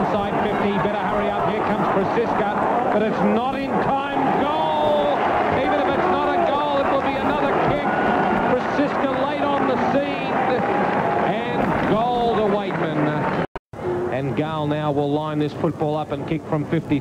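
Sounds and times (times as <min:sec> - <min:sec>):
stadium crowd noise: 0:00.0 - 0:17.0.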